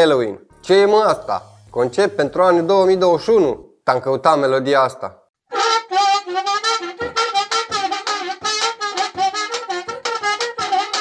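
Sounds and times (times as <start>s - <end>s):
reedy wind instrument melody: 5.5s - 11.0s.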